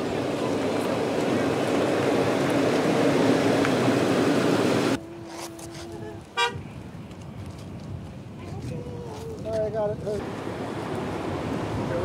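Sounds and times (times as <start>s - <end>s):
road traffic rumble: 0.0s - 12.0s
short horn toot: 5.3s - 6.6s.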